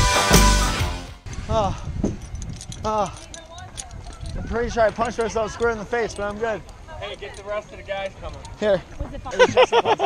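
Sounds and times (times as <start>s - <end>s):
metal harness clips jangling: 2.0s - 8.7s.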